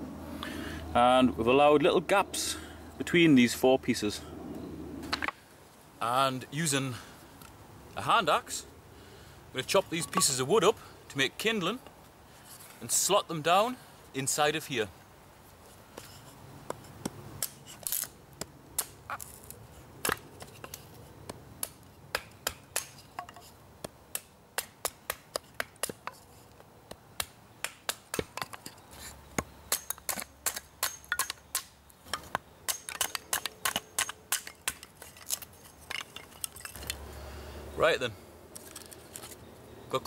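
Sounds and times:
axe splitting wood: 21.6s - 26.2s, 29.4s - 37.0s.

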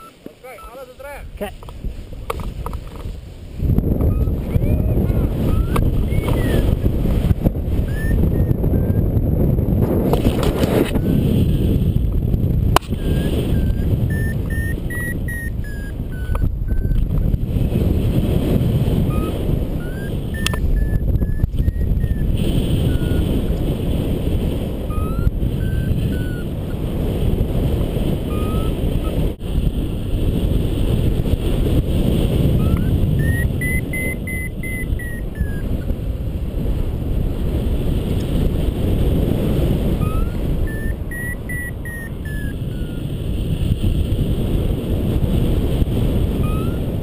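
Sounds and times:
short high beeps: 0.0s - 0.9s, 4.0s - 6.8s, 7.8s - 9.1s, 12.8s - 17.0s, 19.1s - 23.3s, 24.9s - 26.5s, 28.3s - 29.2s, 32.6s - 35.8s, 40.0s - 43.1s, 46.4s - 46.9s
wind roaring over microphone: 0.0s - 47.0s.

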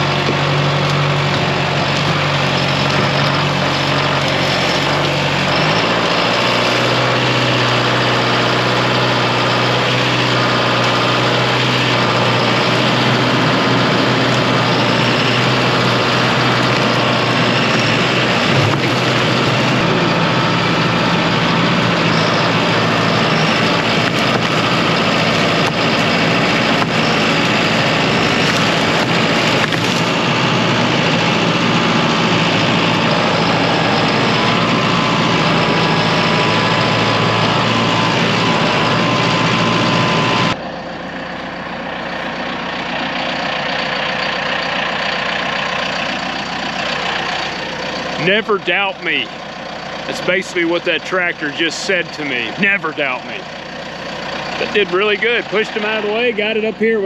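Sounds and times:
steady whine: 0.0s - 57.0s
tractor diesel engine running: 0.0s - 57.0s.

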